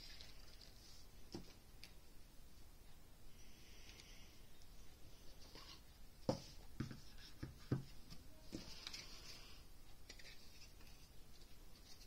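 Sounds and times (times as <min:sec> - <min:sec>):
cardboard and paper rustling: 0:07.0 - 0:12.0.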